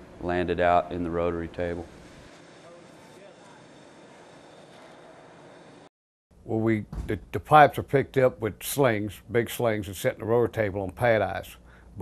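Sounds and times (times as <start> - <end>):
steady background hiss: 6.4 - 12.0.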